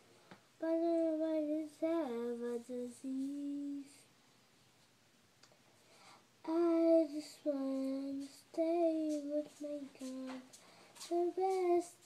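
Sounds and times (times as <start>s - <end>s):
girl singing drawn-out notes: 0.6s - 4.1s, 6.4s - 12.0s.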